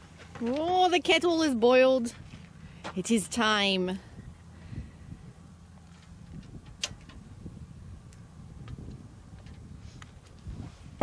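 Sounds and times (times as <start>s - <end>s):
low steady outdoor rumble: 0.0s - 11.0s
sharp click: 6.7s - 7.2s.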